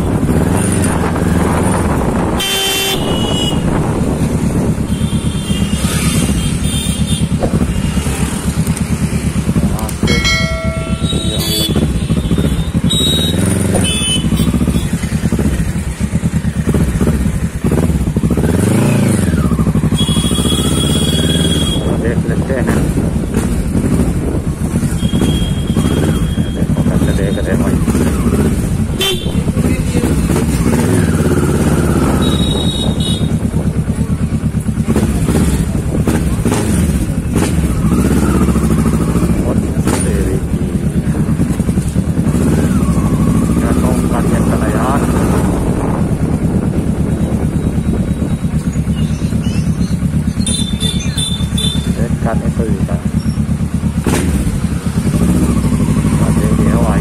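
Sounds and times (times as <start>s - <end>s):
motorcycle engine running: 0.0s - 57.0s
vehicle horns honking: 2.2s - 4.0s, 4.7s - 8.4s, 10.0s - 15.3s, 19.8s - 22.1s, 24.9s - 27.6s, 29.0s - 29.7s, 32.0s - 33.6s, 50.4s - 52.2s.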